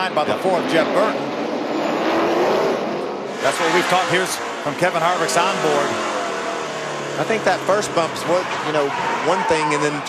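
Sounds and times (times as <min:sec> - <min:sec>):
race truck engine droning: 0:00.0 - 0:10.0.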